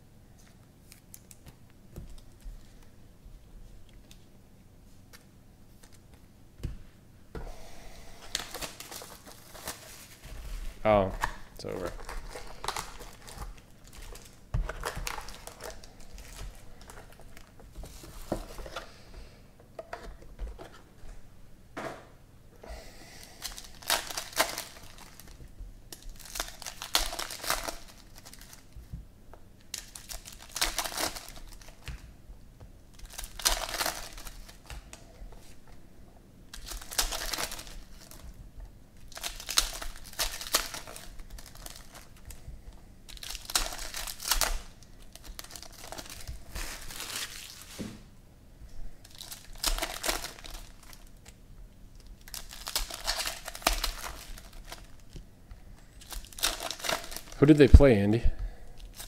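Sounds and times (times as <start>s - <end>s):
foil wrappers tearing and crinkling: 8.3s - 10.3s, 11.6s - 18.6s, 23.3s - 28.8s, 29.6s - 32.0s, 32.9s - 35.6s, 36.5s - 38.3s, 39.0s - 42.4s, 43.1s - 47.8s, 49.0s - 51.4s, 52.0s - 55.2s, 56.0s - 57.7s, 58.8s - 59.0s.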